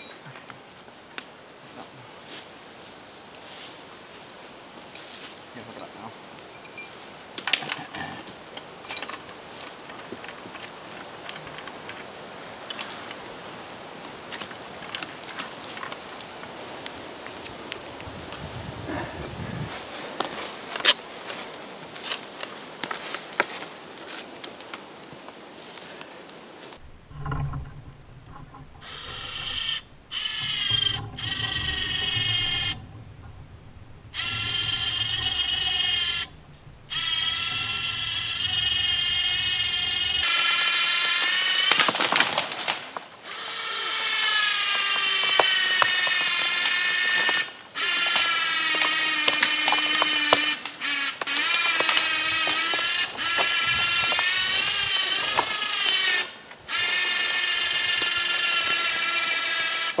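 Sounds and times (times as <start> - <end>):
branches crackling and snapping: 0.1 - 18.6, 19.6 - 26.9, 34.1 - 60.0
electric winch motor whining: 28.8 - 33.2, 34.1 - 41.8, 43.2 - 60.0.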